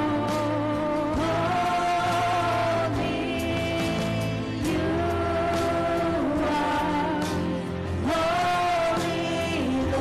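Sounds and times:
band and singers worship music: 0.0 - 10.0.

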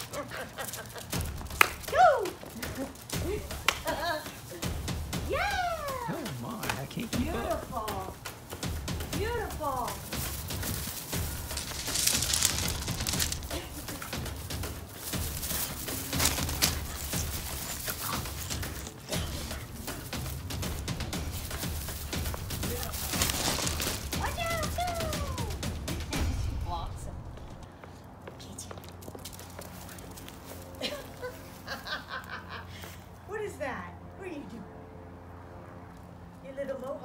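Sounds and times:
background music: 0.0 - 28.2, 30.2 - 37.0.

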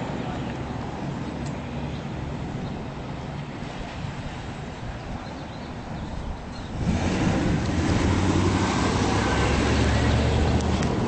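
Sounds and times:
vehicle noise rumble: 0.0 - 11.0.

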